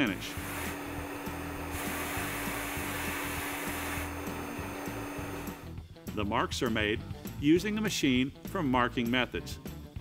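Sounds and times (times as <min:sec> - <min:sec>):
bead blaster hissing: 0:00.0 - 0:05.7.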